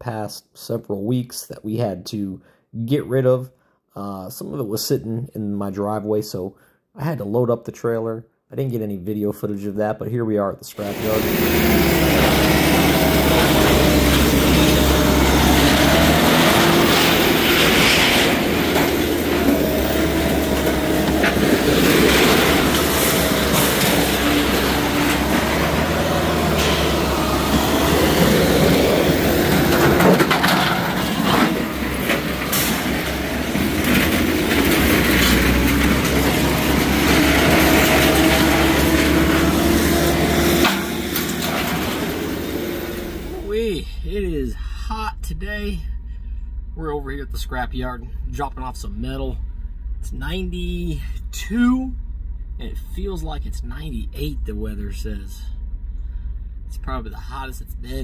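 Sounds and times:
heavy machinery engine: 0:10.8 - 0:58.0
metal clanks and rattles: 0:10.9 - 0:43.3.

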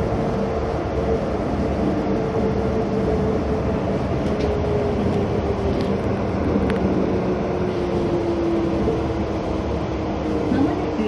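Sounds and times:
train running rumble: 0:00.0 - 0:11.0.

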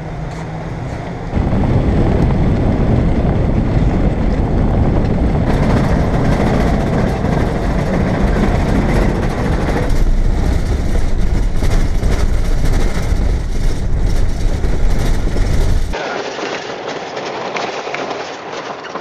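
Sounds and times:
van rattling over dirt road: 0:00.0 - 0:19.0.

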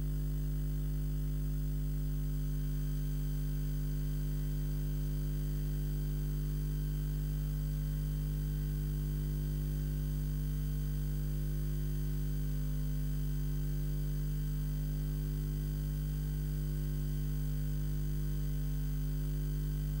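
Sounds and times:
buzzy mains hum: 0:00.0 - 0:20.0.

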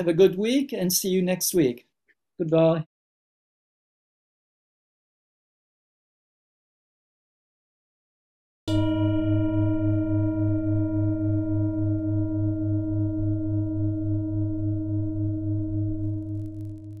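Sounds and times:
singing bowl ringing: 0:08.7 - 0:17.0.

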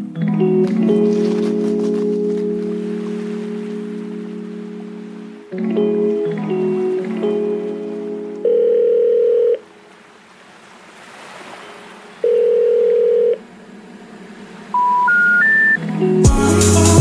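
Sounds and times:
long telephone beeps: 0:08.4 - 0:09.6, 0:12.2 - 0:13.4, 0:14.8 - 0:15.8
short rising telephone beeps: 0:12.2 - 0:13.4, 0:14.8 - 0:15.8
synth notes: 0:13.2 - 0:17.0.

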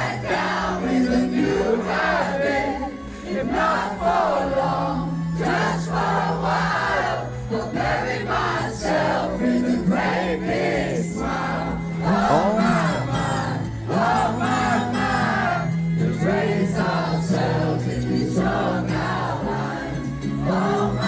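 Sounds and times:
crowd singing along: 0:00.0 - 0:21.0
acoustic band playing: 0:07.5 - 0:21.0
person singing: 0:07.8 - 0:19.8.

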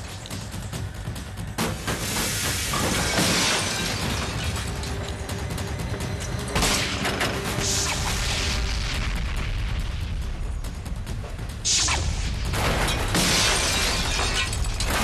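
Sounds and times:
film background score: 0:00.0 - 0:15.0.

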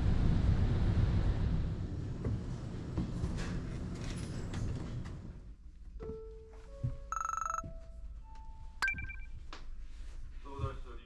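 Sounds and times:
electronic ringing tone: 0:07.1 - 0:07.6, 0:08.8 - 0:09.3
held electronic tones: 0:08.8 - 0:09.3.

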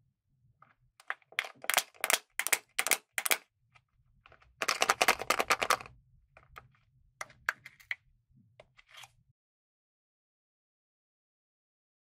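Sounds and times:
plastic container crinkling: 0:01.0 - 0:03.4, 0:04.3 - 0:06.6.

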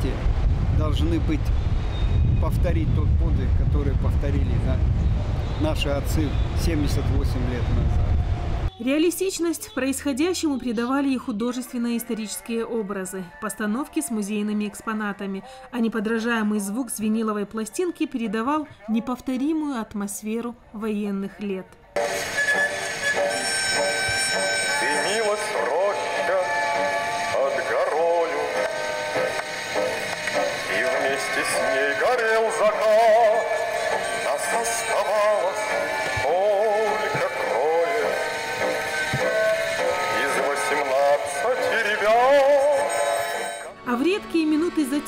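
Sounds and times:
gramophone song with singer: 0:22.0 - 0:45.0.

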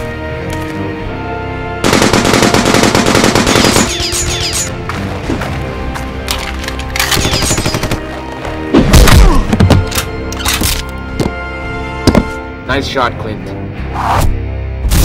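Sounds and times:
orchestral film score: 0:00.0 - 0:15.0
automatic gunfire: 0:01.8 - 0:04.1.

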